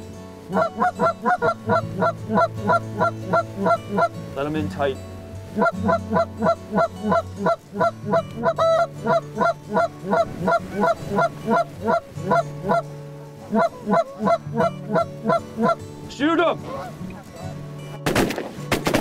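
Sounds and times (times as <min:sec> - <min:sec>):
geese honking: 0:00.4 - 0:04.2, 0:05.4 - 0:15.8, 0:16.6 - 0:17.4.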